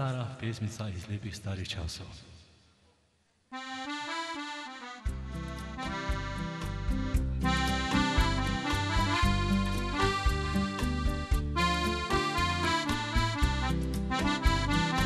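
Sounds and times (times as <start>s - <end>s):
keyboard accordion melody: 3.5s - 15.0s
bass line: 5.1s - 15.0s
drum beat: 5.1s - 15.0s.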